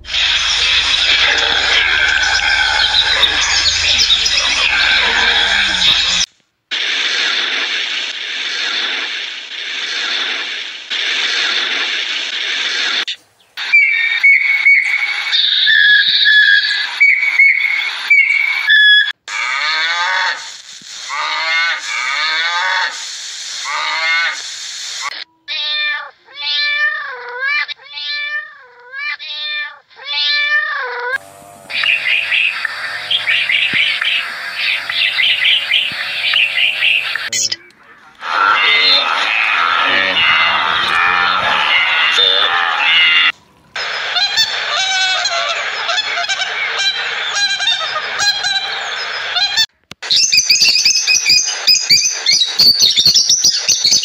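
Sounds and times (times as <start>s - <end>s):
birds calling: 0.0s - 6.3s, 31.2s - 54.0s.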